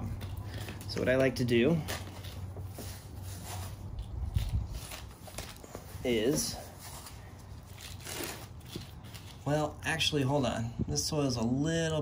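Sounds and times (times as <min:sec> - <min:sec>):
hands rustling potting soil: 0:00.0 - 0:10.7.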